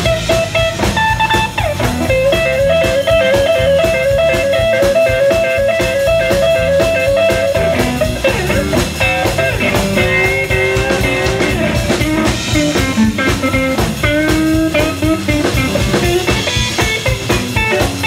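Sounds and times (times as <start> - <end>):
blues band playing: 0.0 - 18.0
guitar trilling between two notes: 0.0 - 18.0.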